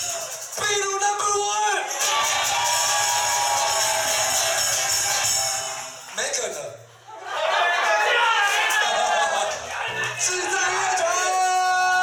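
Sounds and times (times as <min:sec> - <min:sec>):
tambourine shaking: 0:00.0 - 0:01.1, 0:01.9 - 0:06.2.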